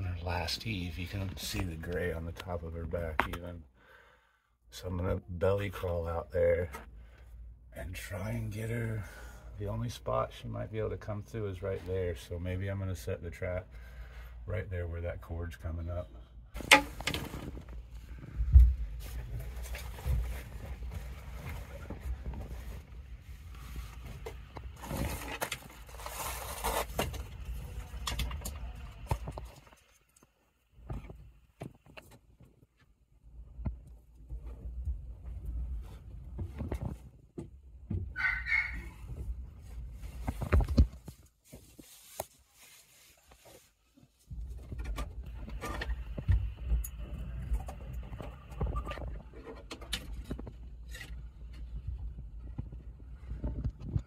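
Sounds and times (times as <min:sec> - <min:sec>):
rustling and scraping: 0:16.6 - 0:54.0.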